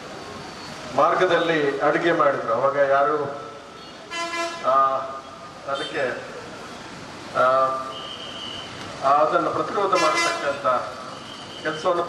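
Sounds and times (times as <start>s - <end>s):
man speaking through microphone: 0.9s - 3.6s, 4.6s - 6.4s, 7.3s - 8.0s, 9.0s - 12.0s
vehicle horn toot: 3.8s - 4.7s, 7.9s - 8.8s, 10.0s - 10.6s.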